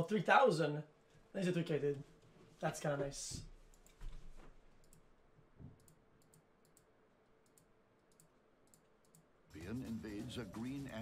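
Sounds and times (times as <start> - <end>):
computer mouse clicks: 4.8 - 5.1, 5.8 - 9.3.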